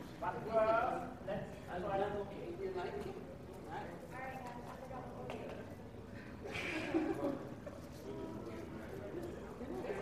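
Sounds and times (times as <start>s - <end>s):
faint voices in a room: 0.0s - 10.0s.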